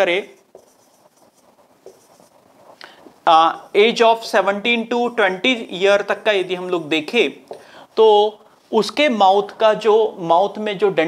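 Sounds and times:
marker pen writing on whiteboard: 0:00.0 - 0:08.6.

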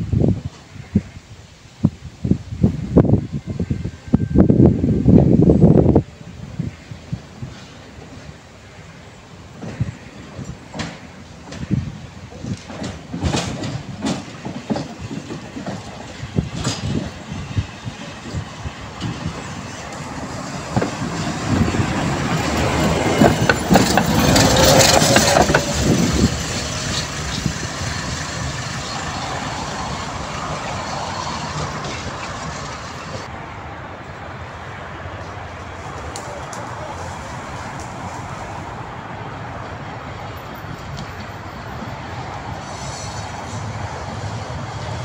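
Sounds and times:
tram whine: 0:00.0 - 0:45.0
tram passing: 0:02.6 - 0:45.0
wheels clicking over rail joints: 0:07.5 - 0:33.3.

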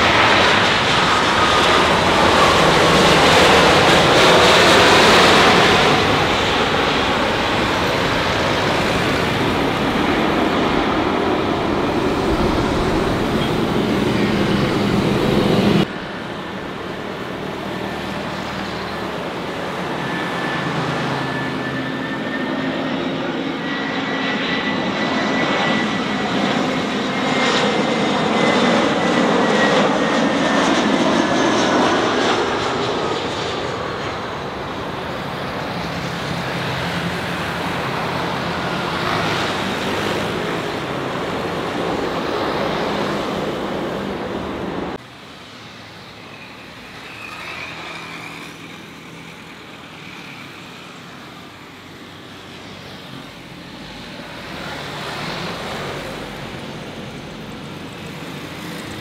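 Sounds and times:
distant jet airliner approaching: 0:00.0 - 0:59.0
jet airliner landing: 0:00.0 - 0:59.0.

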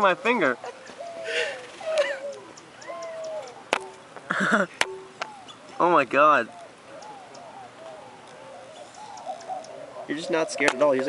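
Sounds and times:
jay calling softly: 0:01.0 - 0:04.1, 0:04.9 - 0:11.0.

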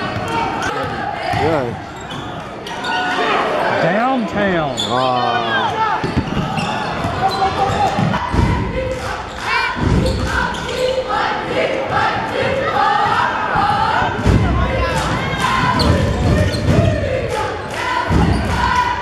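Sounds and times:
echoing voices: 0:00.0 - 0:19.0.

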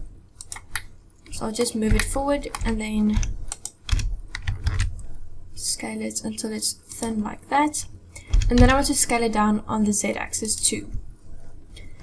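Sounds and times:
keyboard key clicks: 0:01.9 - 0:04.9.

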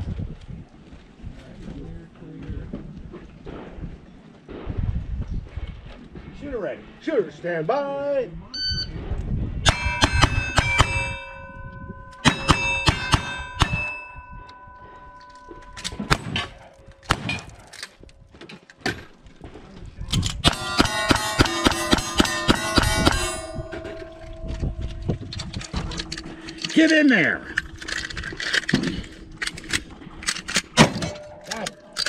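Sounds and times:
steel targets ringing: 0:09.7 - 0:17.7, 0:20.4 - 0:32.0
gunshots: 0:15.9 - 0:17.7.

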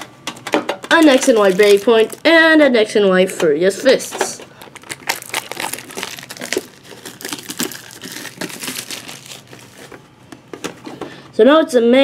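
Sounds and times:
foil wrappers crinkling: 0:00.9 - 0:02.4, 0:03.8 - 0:10.0.

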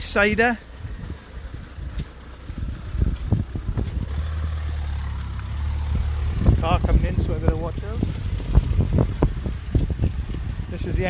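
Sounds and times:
car engine hum approaching: 0:00.0 - 0:11.0
low thumps: 0:00.8 - 0:10.9.

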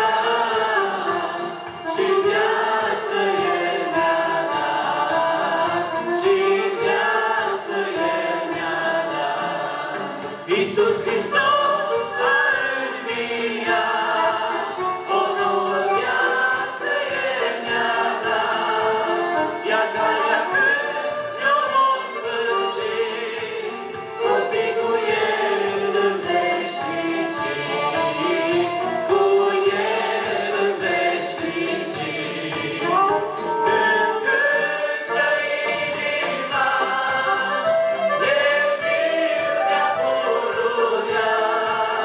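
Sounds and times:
instrumental accompaniment with beat: 0:00.0 - 0:42.0
men and women singing worship song: 0:00.0 - 0:42.0.

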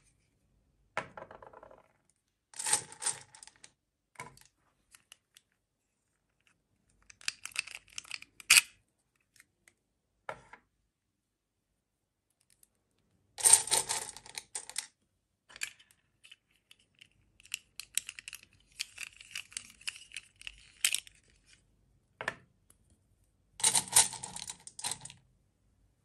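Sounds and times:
plastic beads rattling: 0:02.6 - 0:03.5, 0:13.4 - 0:14.9, 0:16.9 - 0:21.2, 0:23.6 - 0:25.2
plastic toys clicking: 0:07.0 - 0:08.6, 0:15.7 - 0:21.1.

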